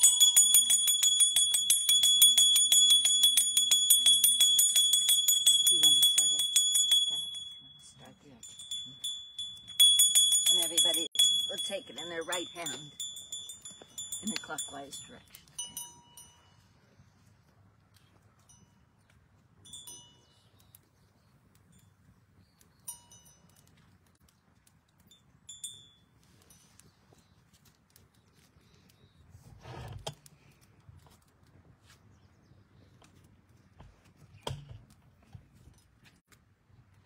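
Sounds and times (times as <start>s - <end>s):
brass hand bell ringing: 0.0s - 16.6s.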